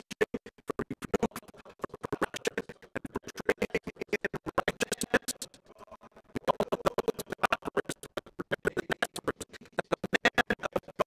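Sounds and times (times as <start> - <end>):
man's voice glitching and stuttering: 1.1 - 11.0.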